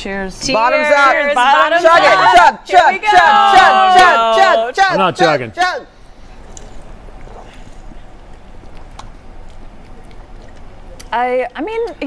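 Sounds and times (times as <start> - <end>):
people sipping drinks: 5.9 - 11.2.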